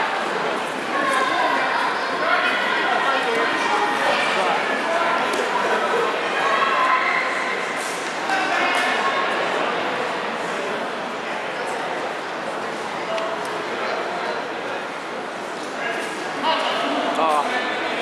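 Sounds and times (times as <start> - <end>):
crowd chattering and calling out: 0.0 - 18.0.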